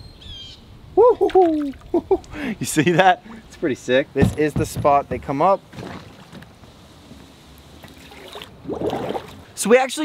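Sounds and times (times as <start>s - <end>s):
pond water sloshing: 1.2s - 2.4s, 5.6s - 9.6s
hand splashing into water: 7.8s - 9.4s.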